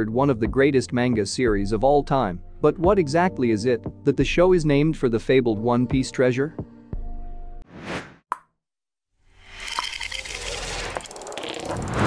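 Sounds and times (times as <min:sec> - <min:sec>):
background music: 0:00.0 - 0:07.6.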